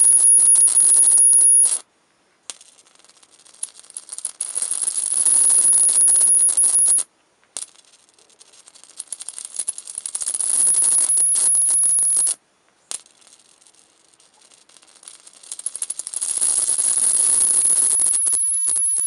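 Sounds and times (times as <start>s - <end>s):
high-voltage arc crackling: 0.0s - 1.8s, 2.8s - 12.4s, 13.0s - 19.0s.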